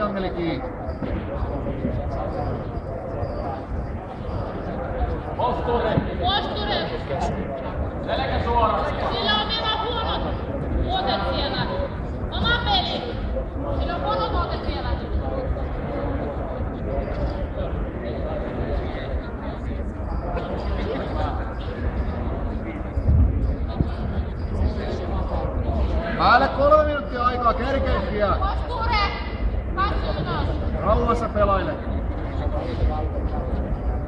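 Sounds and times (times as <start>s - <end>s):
background chatter: 0.0s - 34.0s.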